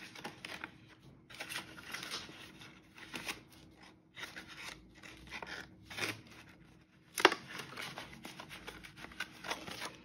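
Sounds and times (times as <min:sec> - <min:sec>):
envelope and banknotes rustling: 0:00.0 - 0:10.0.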